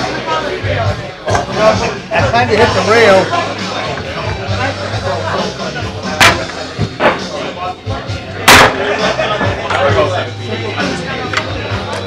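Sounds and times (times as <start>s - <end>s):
pool balls clacking together: 6.2s - 7.3s.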